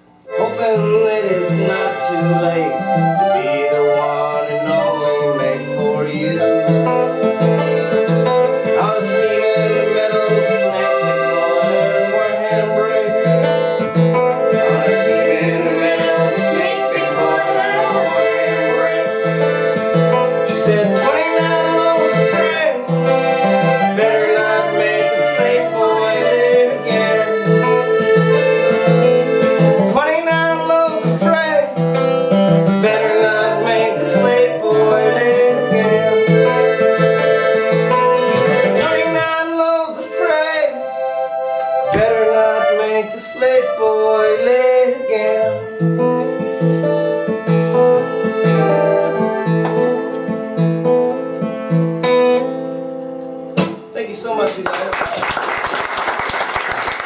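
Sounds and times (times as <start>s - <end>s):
strummed acoustic guitar: 0.0s - 54.0s
accordion: 0.0s - 57.0s
slide guitar gliding: 1.0s - 40.5s.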